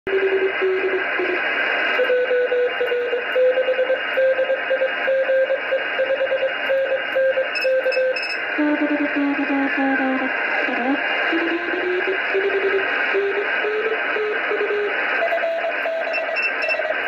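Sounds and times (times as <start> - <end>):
radio band hiss: 0.1 - 17.0
morse code beeping tone: 2.0 - 8.5, 11.9 - 17.0.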